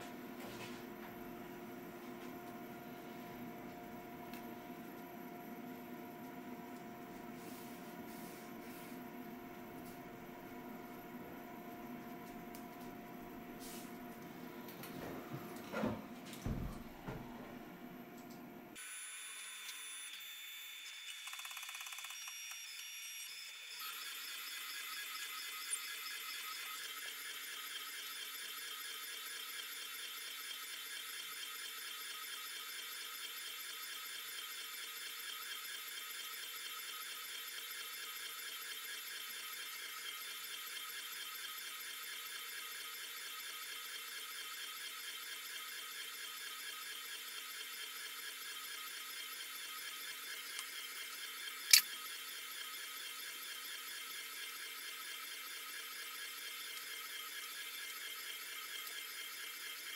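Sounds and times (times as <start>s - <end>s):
printer high-pitched whir: 18.7s - 59.9s.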